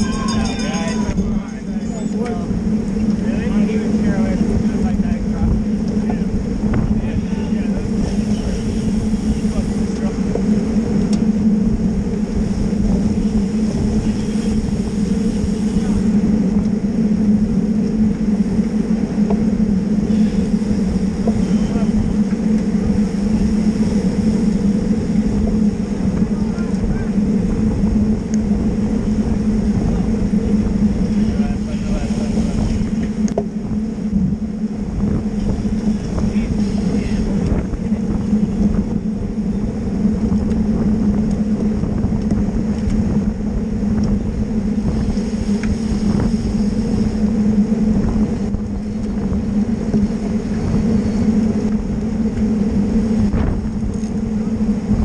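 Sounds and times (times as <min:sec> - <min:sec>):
tyres humming on asphalt: 0:00.0 - 0:55.0
wind on microphone: 0:00.0 - 0:55.0.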